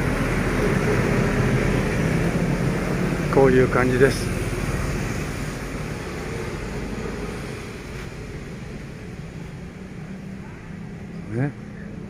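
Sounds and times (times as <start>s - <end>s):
distant road traffic: 0.0s - 12.0s
low engine hum: 0.0s - 12.0s.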